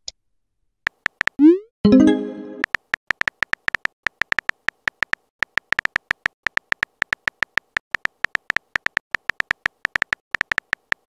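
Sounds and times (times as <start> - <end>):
phone keyboard typing clicks: 0.9 - 1.4, 2.6 - 11.0.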